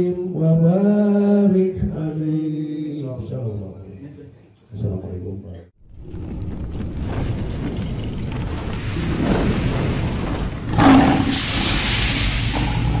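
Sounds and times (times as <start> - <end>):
loud boom: 5.8 - 13.0
low rumble: 5.8 - 13.0
steady hiss: 10.8 - 13.0.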